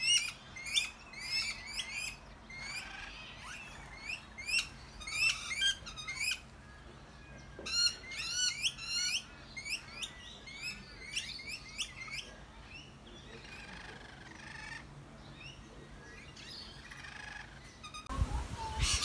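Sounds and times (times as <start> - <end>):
parrots screeching: 0.0 - 6.5, 7.6 - 12.2, 13.4 - 14.9, 16.7 - 18.1.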